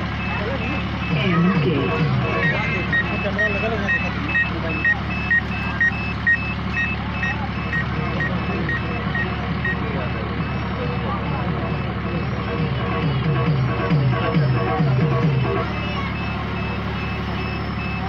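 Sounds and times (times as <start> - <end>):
crowd chatter: 0.0 - 18.0
electronic beeper two-tone beeps: 0.0 - 18.0
steady low hum: 0.0 - 18.0.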